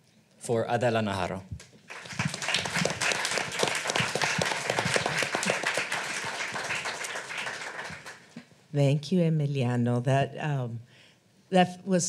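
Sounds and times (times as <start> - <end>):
audience applauding: 1.8 - 8.4.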